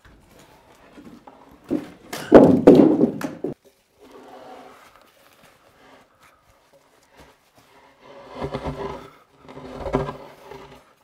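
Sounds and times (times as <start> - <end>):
wooden beam scraping: 0.3 - 6.4, 7.0 - 11.0.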